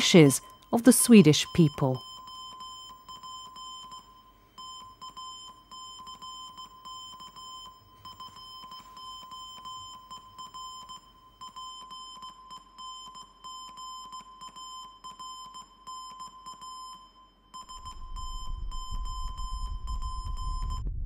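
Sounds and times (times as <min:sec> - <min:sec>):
morse code beeping tone: 0:00.0 - 0:20.8.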